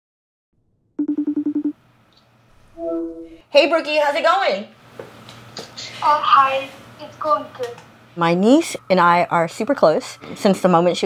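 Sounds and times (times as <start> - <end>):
video call ringing tone: 1.0 - 1.8.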